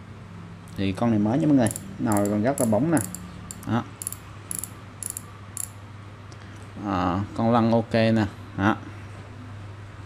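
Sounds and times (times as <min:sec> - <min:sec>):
fishing reel ratchet clicking: 0:01.6 - 0:05.8.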